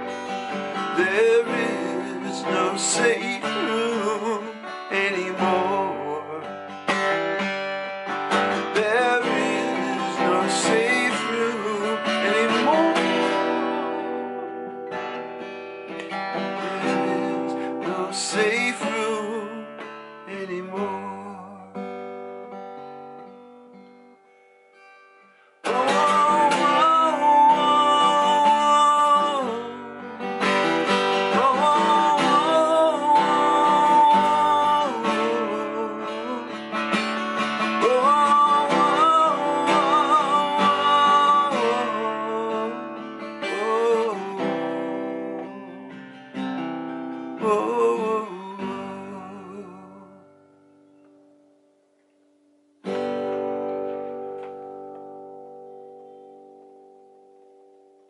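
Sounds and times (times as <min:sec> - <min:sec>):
man singing: 0:00.0 - 0:07.2, 0:08.3 - 0:14.5, 0:16.1 - 0:22.2, 0:25.6 - 0:46.0, 0:47.2 - 0:50.5
acoustic guitar strumming: 0:00.0 - 0:58.0.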